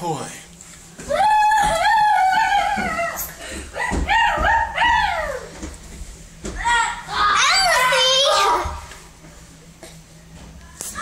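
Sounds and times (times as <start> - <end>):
child crying: 1.1 - 5.4.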